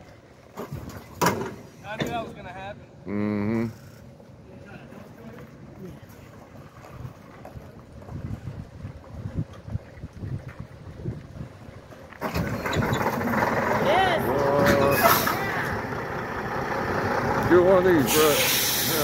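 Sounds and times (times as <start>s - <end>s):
low uneven rumble of dragged truck: 0.0s - 19.0s
diesel engine running loudly: 12.2s - 19.0s.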